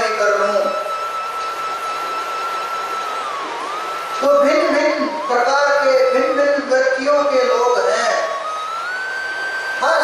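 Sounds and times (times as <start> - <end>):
high-pitched tone: 0.0 - 10.0.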